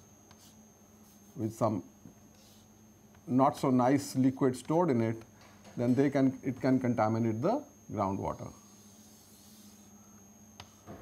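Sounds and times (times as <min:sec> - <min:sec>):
low room hum: 0:00.0 - 0:11.0
chalk stroke hissing on chalkboard: 0:02.4 - 0:02.7, 0:08.7 - 0:09.9.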